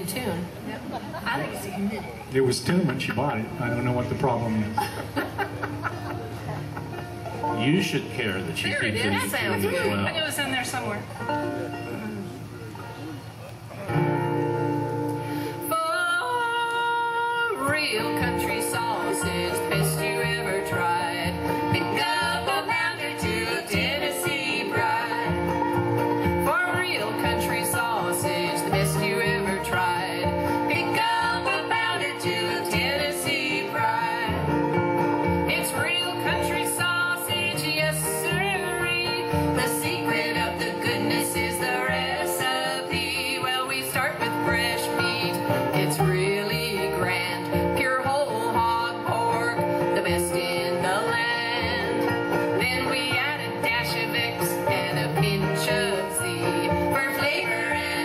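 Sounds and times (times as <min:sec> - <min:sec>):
strummed acoustic guitar: 0:02.1 - 0:58.0
plucked upright bass: 0:05.8 - 0:15.3, 0:17.6 - 0:58.0
women singing in harmony: 0:15.5 - 0:58.0.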